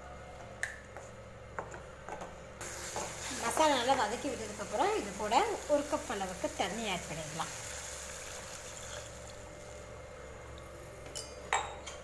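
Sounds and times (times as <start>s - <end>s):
gravy sizzling in a pan: 2.6s - 10.0s.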